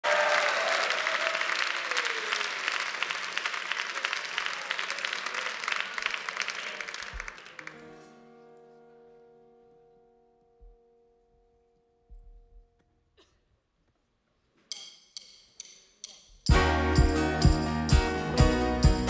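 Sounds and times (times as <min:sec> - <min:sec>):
studio audience applauding: 0:00.0 - 0:08.0.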